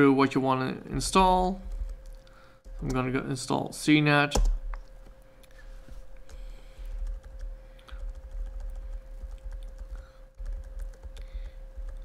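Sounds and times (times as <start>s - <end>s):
faint steady hum: 0.0s - 12.0s
keyboard keys clicking: 7.0s - 12.0s.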